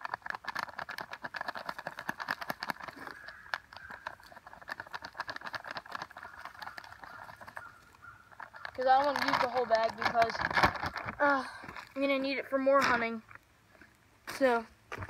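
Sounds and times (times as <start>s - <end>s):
granular feed pattering on dry leaves: 0.0s - 13.4s.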